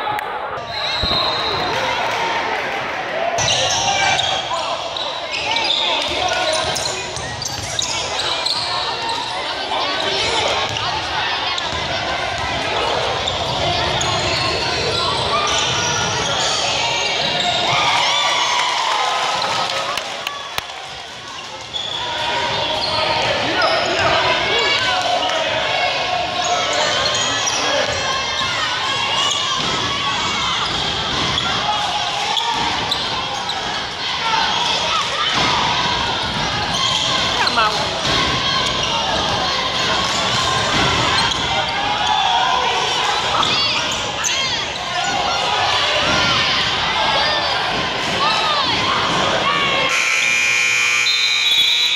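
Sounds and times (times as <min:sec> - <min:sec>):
people shouting and chattering: 0:00.0 - 0:51.9
scoreboard buzzer tone: 0:49.9 - 0:51.9.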